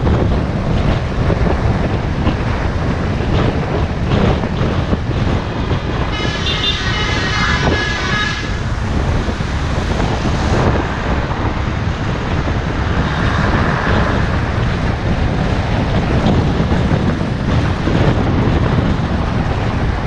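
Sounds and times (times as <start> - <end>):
road noise: 0.0 - 20.0
wind rush on microphone: 0.0 - 20.0.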